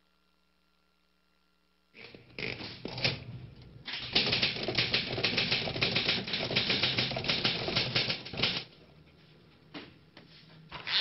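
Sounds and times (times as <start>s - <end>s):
rapid sharp clicks: 3.9s - 8.7s.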